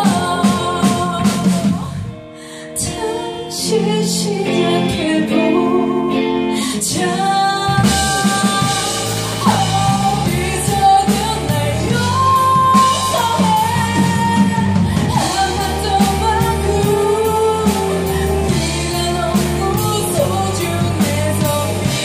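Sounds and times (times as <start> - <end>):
drum kit: 0.0 - 2.2, 6.8 - 22.0
electric bass: 0.0 - 22.0
electric guitar: 0.0 - 22.0
woman singing into a microphone: 0.0 - 22.0.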